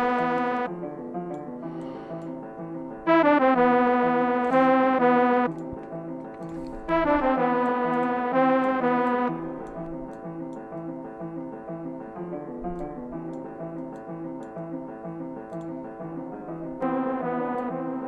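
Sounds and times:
electric piano-like keyboard melody: 0:00.0 - 0:18.0.

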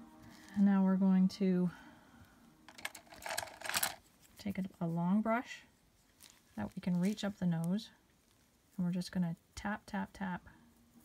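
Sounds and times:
paintbrush handles clicking: 0:02.7 - 0:04.0.

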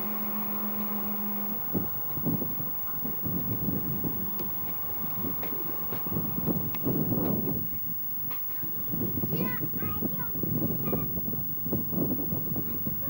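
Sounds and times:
train wheels knocking on rails: 0:00.0 - 0:11.0
steady low hum: 0:00.0 - 0:13.0.

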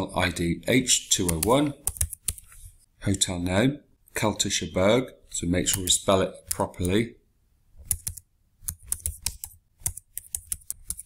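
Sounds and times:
typing on computer keyboard: 0:01.3 - 0:02.5, 0:07.8 - 0:11.0.

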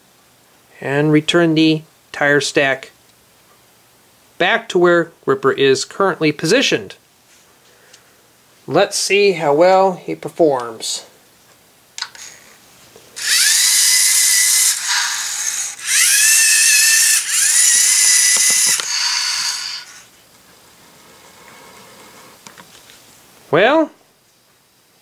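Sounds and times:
servo motors whirring: 0:13.2 - 0:20.0.

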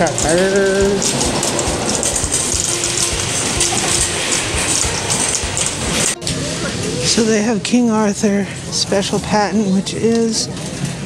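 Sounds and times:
shopping cart rolling on tiles: 0:00.0 - 0:07.4
faint music: 0:00.0 - 0:11.0.

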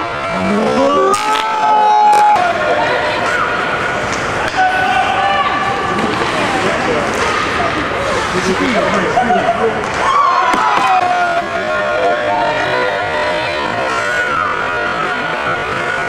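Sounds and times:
hockey sticks clacking on ice: 0:03.1 - 0:04.9, 0:05.6 - 0:08.5.

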